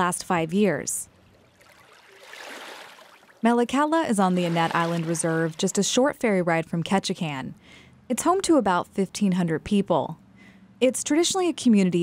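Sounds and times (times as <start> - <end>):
small waves lapping at shore: 1.4 - 3.4, 4.3 - 5.7.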